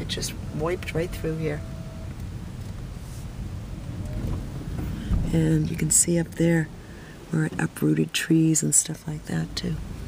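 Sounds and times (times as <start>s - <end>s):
road and tyre noise in car cabin: 0.0s - 10.0s.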